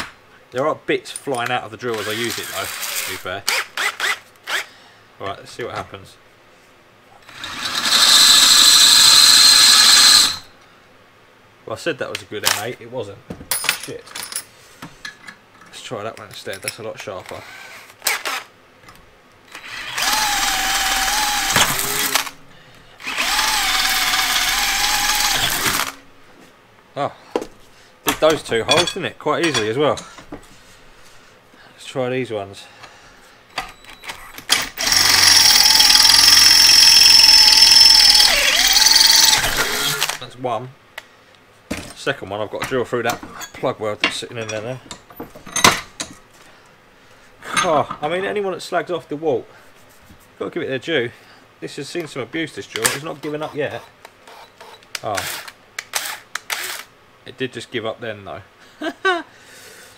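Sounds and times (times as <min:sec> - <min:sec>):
cordless drill drilling steel: 0:01.9 - 0:04.7, 0:07.2 - 0:10.5, 0:19.5 - 0:22.3, 0:23.0 - 0:26.0, 0:34.7 - 0:40.2, 0:53.7 - 0:56.9.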